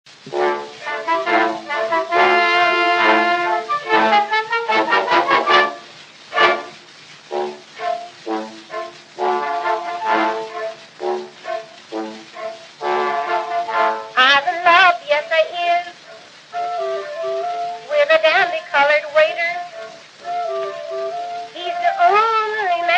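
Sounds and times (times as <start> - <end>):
brass instrumental chords: 0.2 - 14.2.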